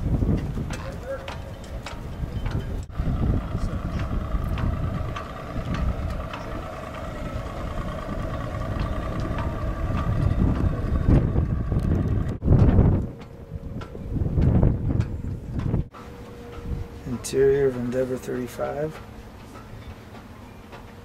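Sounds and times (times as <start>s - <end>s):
wind buffeting microphone: 0.0s - 20.2s.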